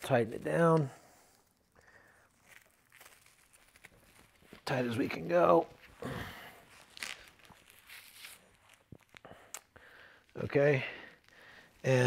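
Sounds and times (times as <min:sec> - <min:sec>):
nylon strap rustling and scraping: 0:00.0 - 0:12.0.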